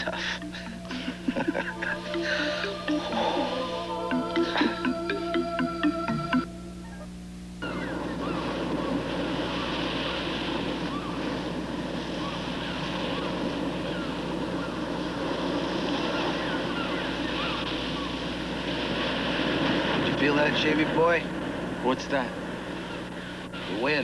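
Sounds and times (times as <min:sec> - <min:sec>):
low hum: 0:00.0 - 0:19.2
rushing wind: 0:07.6 - 0:24.0.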